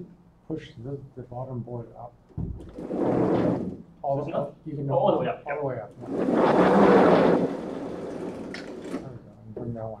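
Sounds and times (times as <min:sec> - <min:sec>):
sliding chalkboard rolling rumble: 0:02.7 - 0:03.8, 0:06.0 - 0:09.0.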